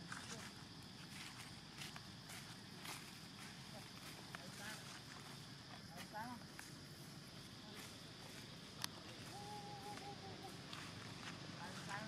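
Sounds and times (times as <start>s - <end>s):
high background hiss: 0.0s - 12.0s.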